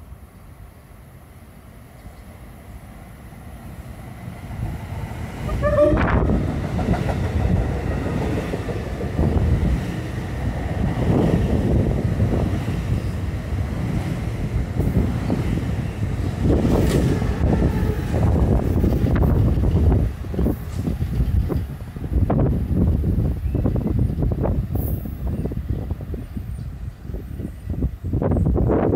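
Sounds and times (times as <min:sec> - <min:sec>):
train wheels rumbling on rail: 0:01.5 - 0:28.9.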